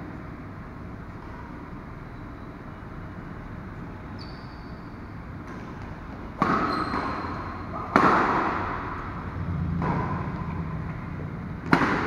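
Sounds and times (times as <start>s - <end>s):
sports hall background rush: 0.0s - 12.0s.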